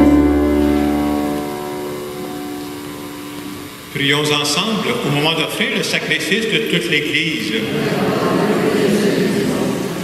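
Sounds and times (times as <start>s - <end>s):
keyboard chord held: 0.0s - 4.0s.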